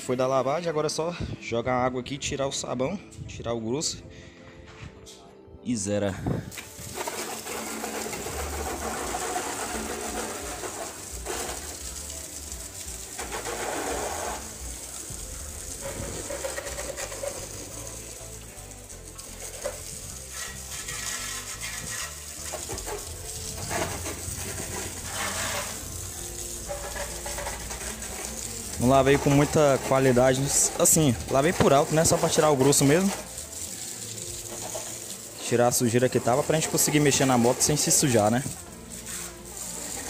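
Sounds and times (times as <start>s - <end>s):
garden hose spraying water: 6.4s - 40.0s.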